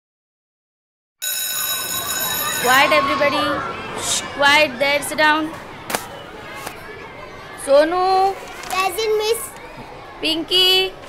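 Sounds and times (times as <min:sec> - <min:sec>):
bell ringing: 0:01.2 - 0:03.5.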